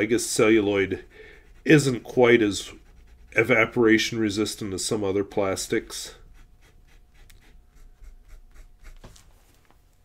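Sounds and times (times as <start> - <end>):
pen nib scratching paper: 0.1 - 4.4, 5.9 - 9.1.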